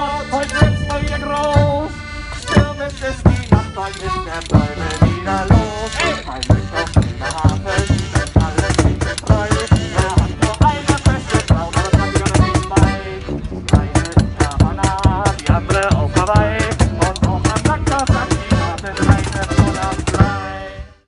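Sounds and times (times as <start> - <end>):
accordion: 0.0 - 21.0
man singing through megaphone: 0.0 - 21.0
tuba: 0.0 - 21.0.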